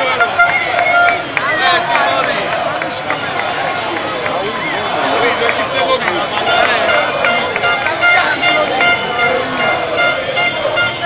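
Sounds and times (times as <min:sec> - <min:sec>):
crowd shouting: 0:00.0 - 0:11.0
horns honking: 0:00.0 - 0:11.0.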